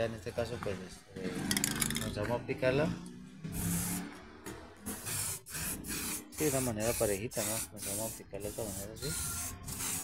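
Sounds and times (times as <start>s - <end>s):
spray paint can hiss: 3.6s - 4.0s, 4.9s - 10.0s.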